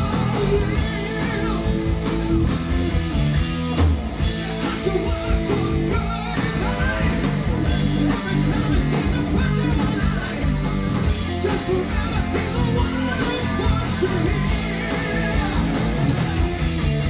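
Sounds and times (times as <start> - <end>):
man singing: 0.0 - 2.0, 4.4 - 16.1
bass: 0.0 - 17.0
drums: 0.0 - 17.0
electric guitars: 0.0 - 17.0.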